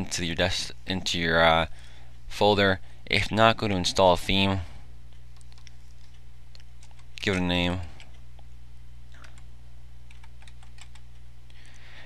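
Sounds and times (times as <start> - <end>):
low electrical hum: 0.0 - 12.0
keyboard typing: 6.8 - 7.4, 10.1 - 11.2.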